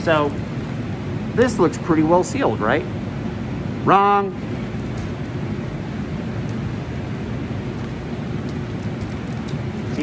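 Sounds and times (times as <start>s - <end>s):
blower rushing hum: 0.0s - 10.0s.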